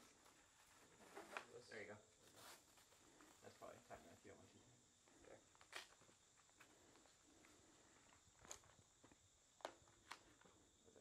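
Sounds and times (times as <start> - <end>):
faint clicks and rustles of strap: 5.0 - 10.6.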